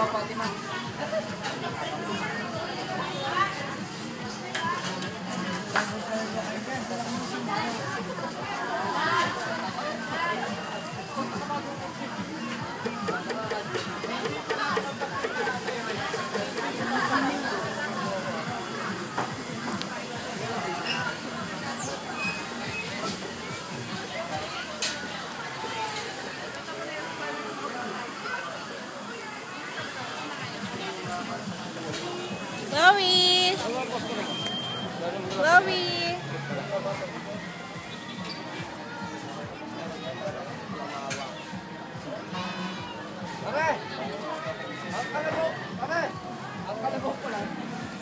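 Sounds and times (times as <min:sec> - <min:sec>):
music playing: 0:00.0 - 0:27.5, 0:29.7 - 0:48.0
people talking at once: 0:00.0 - 0:48.0.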